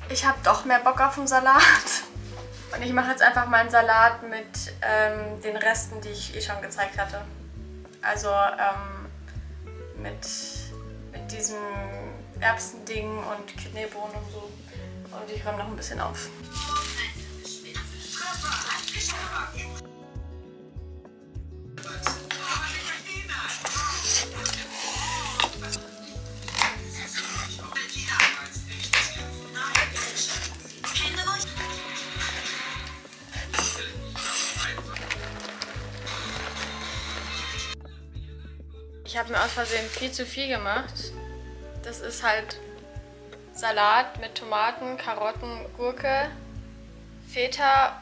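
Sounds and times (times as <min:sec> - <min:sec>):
background music with bass line: 0:00.0 - 0:43.6, 0:45.4 - 0:48.0
knife chopping on wooden board: 0:26.5 - 0:30.6, 0:33.4 - 0:33.9.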